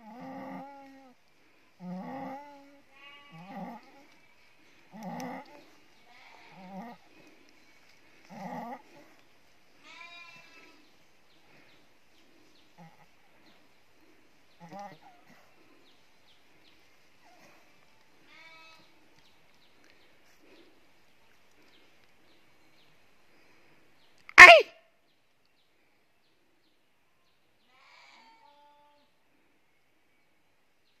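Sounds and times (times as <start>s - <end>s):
sheep groaning and bleating: 0.0s - 1.2s, 1.8s - 4.2s, 4.9s - 7.3s, 8.2s - 9.2s.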